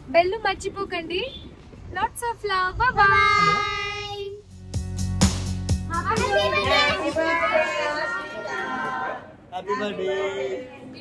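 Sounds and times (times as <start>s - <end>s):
children speaking and calling out: 2.8s - 4.4s, 5.8s - 10.0s.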